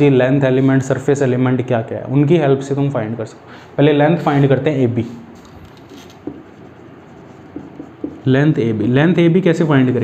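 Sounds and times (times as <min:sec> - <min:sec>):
marker pen writing on whiteboard: 0:05.3 - 0:08.9.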